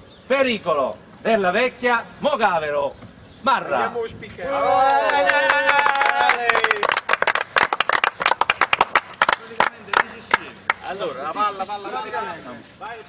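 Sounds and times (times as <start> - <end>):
people clapping: 4.8 - 11.0.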